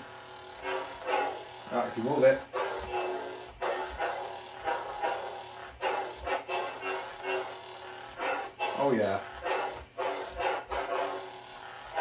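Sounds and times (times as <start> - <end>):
lightsaber hum: 0.0 - 12.0.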